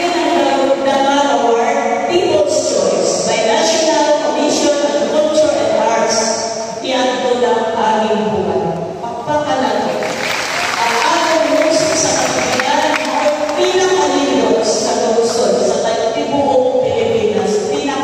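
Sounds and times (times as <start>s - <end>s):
woman speaking over loudspeakers: 0.0s - 18.0s
audience applause: 9.9s - 14.0s.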